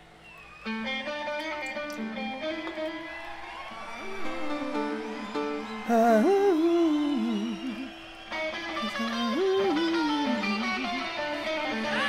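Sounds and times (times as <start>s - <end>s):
electric guitar melodic run: 0.6s - 3.2s, 4.1s - 12.0s.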